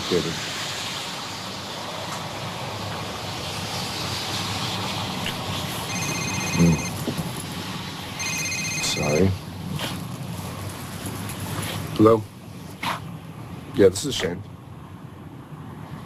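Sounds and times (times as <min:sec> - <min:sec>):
outdoor background hiss: 0:00.0 - 0:16.0
phone ringtone trill: 0:05.9 - 0:07.0, 0:08.2 - 0:09.2.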